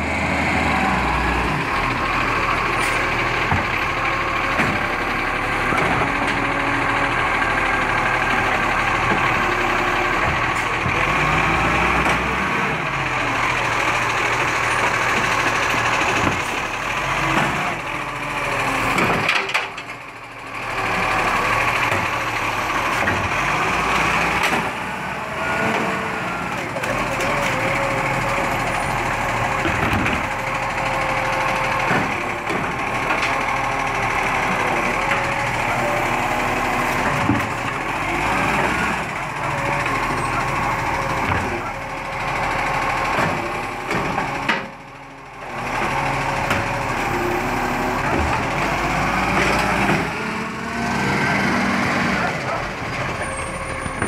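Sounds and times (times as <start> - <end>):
garbage truck engine revving: 0.0 - 54.0.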